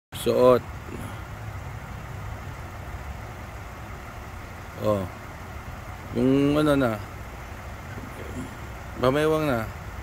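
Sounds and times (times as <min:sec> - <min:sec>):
car engine idling: 0:00.1 - 0:10.0.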